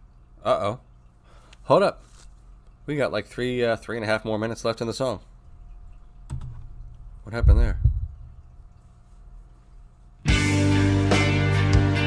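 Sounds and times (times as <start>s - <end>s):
low steady hum: 0.0s - 10.3s.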